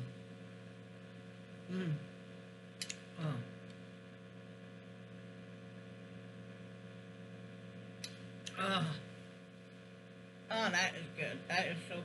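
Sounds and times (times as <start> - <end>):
low room hum: 0.0 - 12.0
person saying oh: 1.7 - 2.1, 3.2 - 3.5, 8.5 - 9.0.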